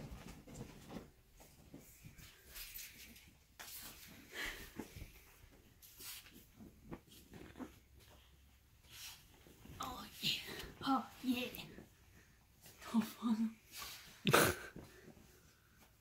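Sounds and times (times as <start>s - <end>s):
towel and bedding rustling: 0.0s - 16.0s.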